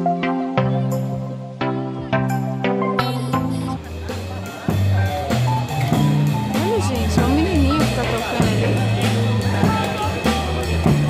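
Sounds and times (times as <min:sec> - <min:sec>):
small live band playing: 0:00.0 - 0:11.0.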